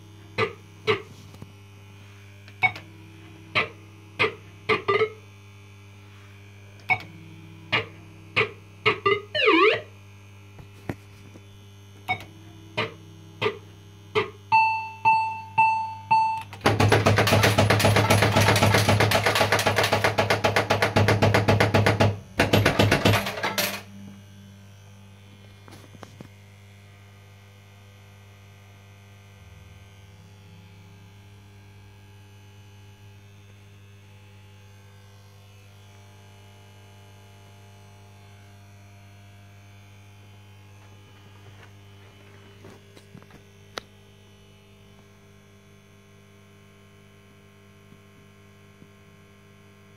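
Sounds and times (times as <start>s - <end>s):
steady mains hum: 0.0s - 49.9s
fast repeated electronic sound: 7.7s - 9.9s.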